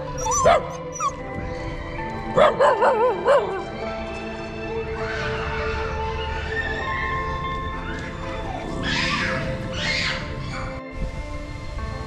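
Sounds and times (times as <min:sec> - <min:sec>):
small dog whimpering and yipping: 0:00.0 - 0:01.2
background music with held tones: 0:00.0 - 0:12.0.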